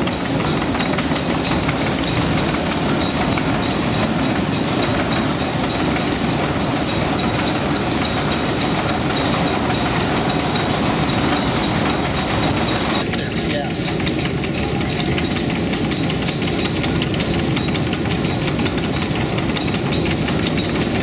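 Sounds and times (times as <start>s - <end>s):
fast continuous clatter: 0.0s - 21.0s.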